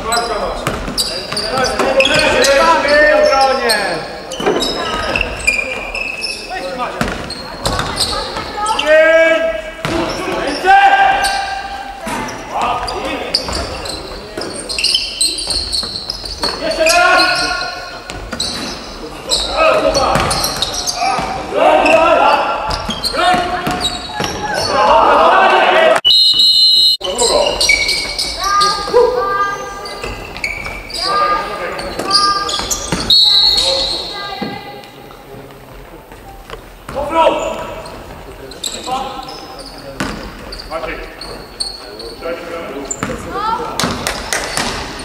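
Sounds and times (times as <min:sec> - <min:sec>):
players calling out: 0:00.0 - 0:35.0
basketball bouncing on wooden court: 0:00.6 - 0:02.4, 0:07.0 - 0:08.8, 0:12.7 - 0:13.8, 0:19.9 - 0:22.0, 0:22.7 - 0:24.7, 0:40.0 - 0:40.4.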